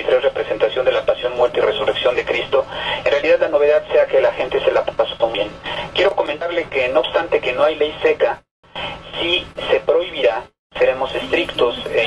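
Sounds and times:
speech over telephone line: 0.0s - 8.4s, 9.1s - 12.0s.

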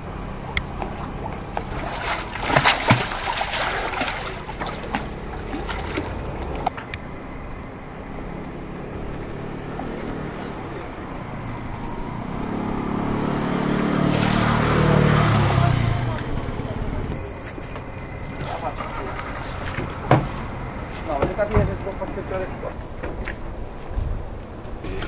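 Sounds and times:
engine running: 0.0s - 21.0s
turtles splashing at water surface: 0.4s - 6.8s.

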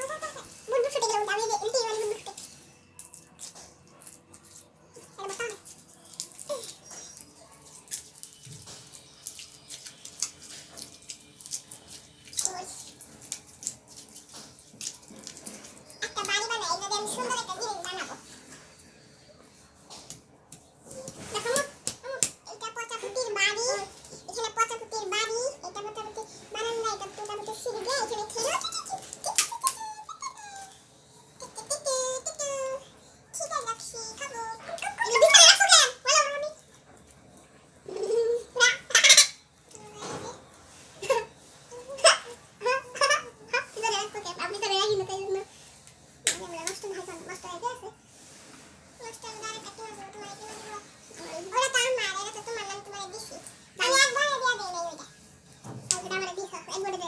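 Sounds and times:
child's voice: 0.0s - 2.5s, 5.0s - 5.8s, 16.0s - 18.3s, 20.9s - 30.8s, 31.4s - 36.6s, 37.9s - 39.1s, 39.7s - 40.4s, 41.0s - 45.5s, 46.3s - 48.0s, 49.0s - 55.2s, 55.9s - 57.0s
slime squelching and crackling: 2.1s - 16.4s.

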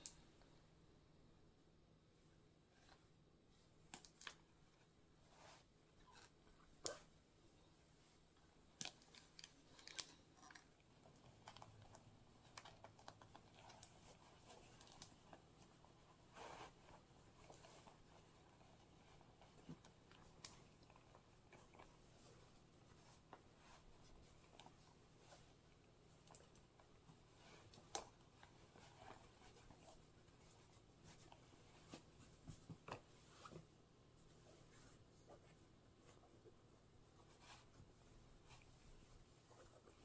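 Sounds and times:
faint fabric rustles: 2.1s - 40.0s.

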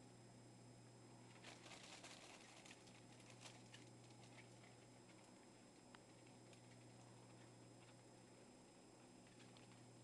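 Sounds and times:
low steady hum: 0.0s - 10.0s
guinea pigs rustling in hay: 1.3s - 8.2s.

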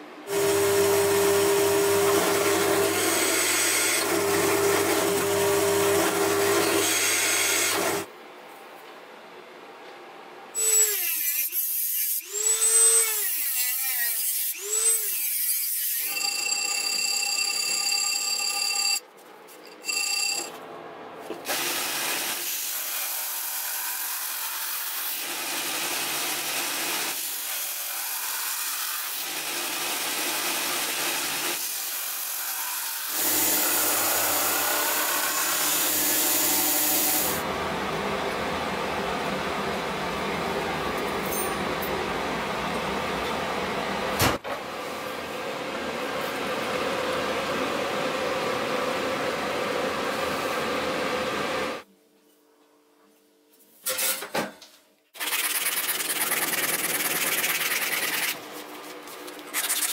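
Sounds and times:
drill motor: 0.3s - 8.1s, 27.9s - 37.4s.

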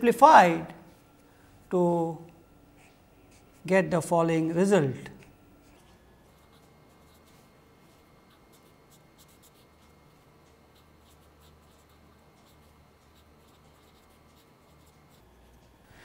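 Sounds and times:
marker pen scratching on paper: 5.6s - 15.6s.

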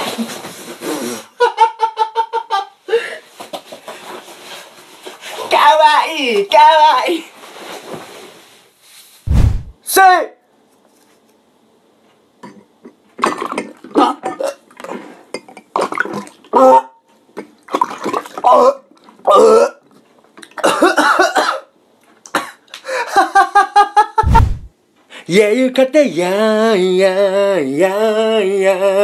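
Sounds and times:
thud: 9.3s - 9.8s, 24.2s - 24.7s
man coughing through tube: 20.6s - 21.7s, 22.4s - 22.6s.

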